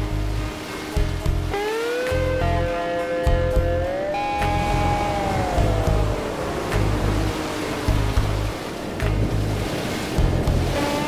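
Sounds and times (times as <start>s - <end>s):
soundtrack music with pulsing bass: 0.0s - 11.0s
breaking surf: 0.5s - 11.0s.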